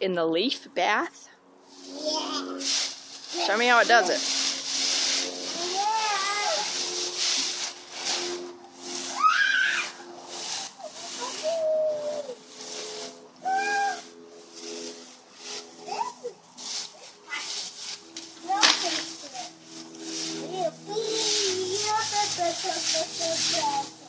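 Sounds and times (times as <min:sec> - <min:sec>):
dry leaves rustling and crunching: 0:01.7 - 0:24.0
child squealing: 0:09.1 - 0:10.0, 0:11.3 - 0:12.4, 0:13.4 - 0:14.1.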